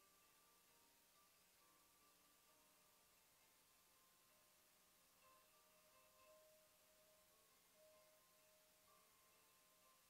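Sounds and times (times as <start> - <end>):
faint distant music: 0.0 - 10.0.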